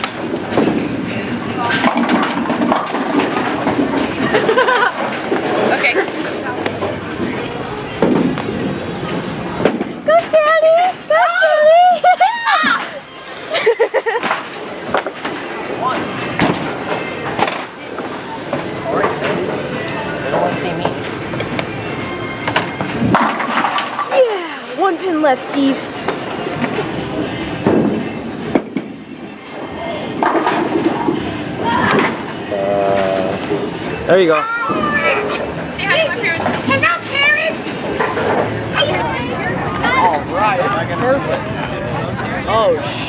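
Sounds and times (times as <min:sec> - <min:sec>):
bowling pins clattering: 0:00.0 - 0:10.4, 0:22.3 - 0:24.2, 0:24.9 - 0:32.5
bowling balls rolling: 0:00.0 - 0:11.1, 0:13.9 - 0:24.3, 0:24.9 - 0:40.3
crowd chatter: 0:00.0 - 0:43.0
people talking: 0:31.6 - 0:33.4, 0:34.5 - 0:37.6.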